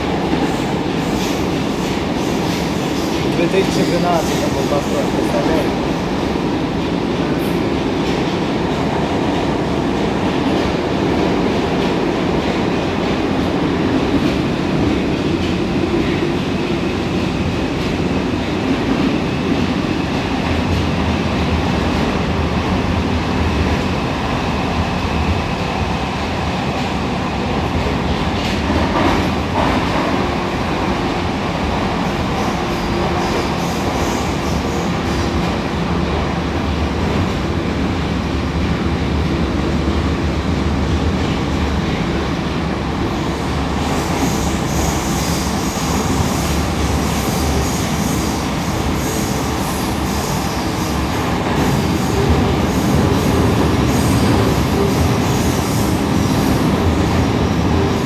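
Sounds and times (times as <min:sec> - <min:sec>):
train wheels rumbling: 0:00.0 - 0:58.0.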